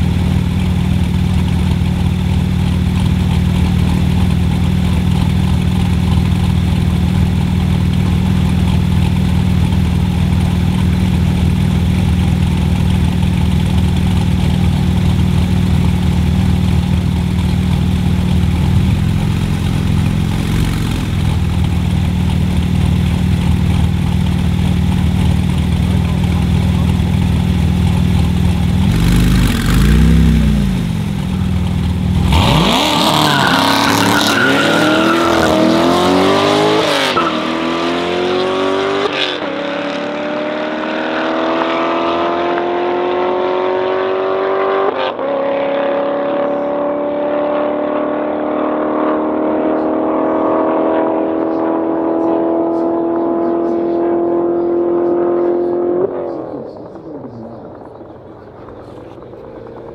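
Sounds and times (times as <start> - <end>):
car engines idling: 0.0 - 38.9, 49.4 - 59.9
engine revving: 7.7 - 59.9.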